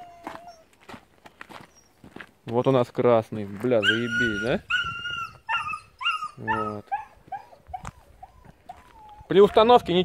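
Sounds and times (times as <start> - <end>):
animal whining: 0.0 - 0.7, 3.8 - 9.8.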